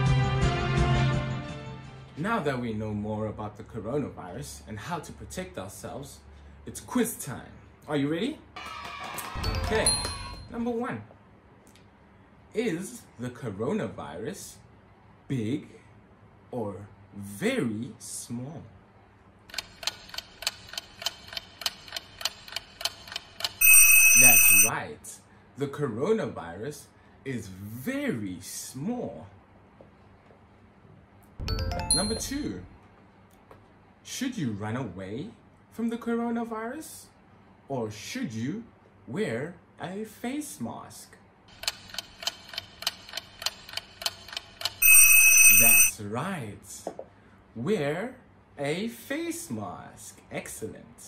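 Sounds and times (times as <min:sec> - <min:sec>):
clock ticking: 0:19.5 - 0:24.7, 0:41.6 - 0:45.9
electronic alarm tone: 0:23.6 - 0:24.7, 0:44.8 - 0:45.9.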